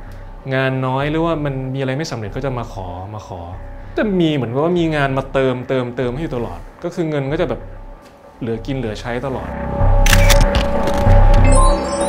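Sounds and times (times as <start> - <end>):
synth music with heavy bass beat: 9.4 - 12.0
bright clicks: 10.1 - 11.8.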